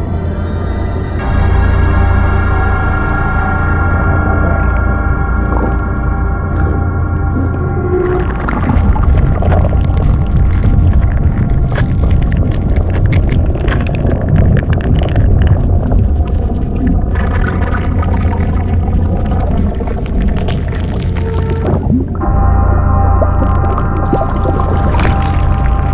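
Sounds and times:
deep rumble: 0:00.0 - 0:25.9
droning moaning tones: 0:00.0 - 0:25.9
dense crackling and fizzing: 0:07.3 - 0:22.2, 0:23.2 - 0:25.9.

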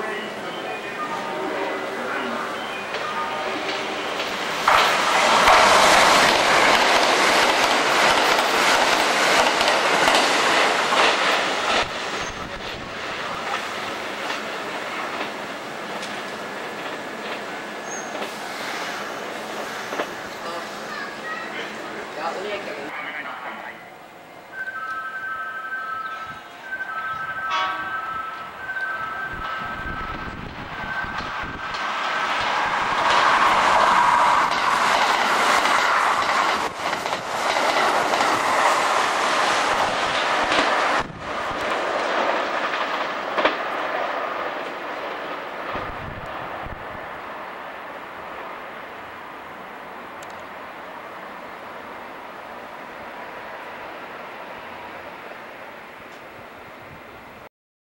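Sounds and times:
train passing at speed: 0:00.0 - 0:57.5
two-note warning tone: 0:23.7 - 0:30.1.

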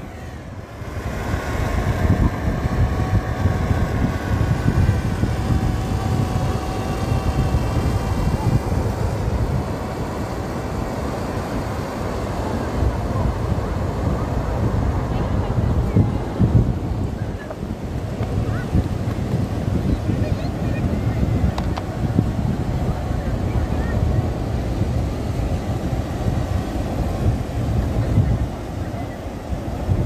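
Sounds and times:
drone propellers humming: 0:00.0 - 0:30.0
wind buffeting microphone: 0:00.0 - 0:30.0.

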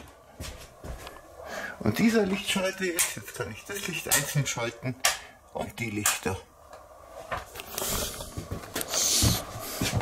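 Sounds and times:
microphone rustling against shirt: 0:07.2 - 0:10.0.

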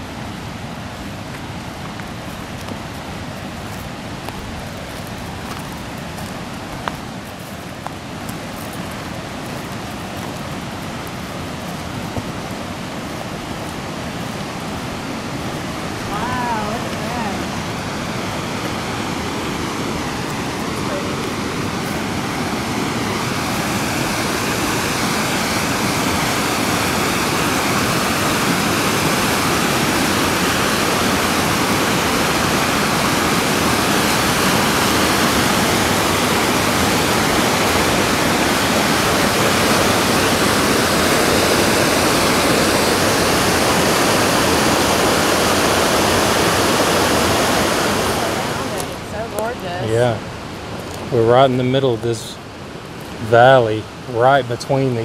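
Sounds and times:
river rushing through rapids: 0:00.0 - 0:55.0.

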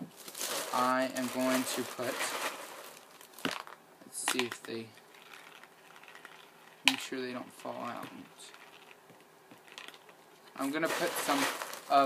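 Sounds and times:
faint handling rustle: 0:00.1 - 0:03.4, 0:09.6 - 0:12.0.

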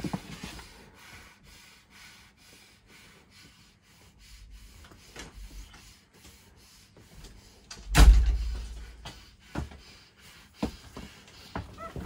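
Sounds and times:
heavy low thump: 0:07.9 - 0:09.0.

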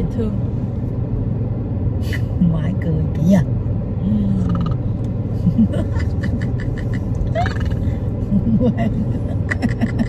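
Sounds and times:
car road and engine rumble: 0:00.0 - 0:10.0
passengers talking: 0:02.0 - 0:10.0
passengers laughing: 0:05.4 - 0:10.0.

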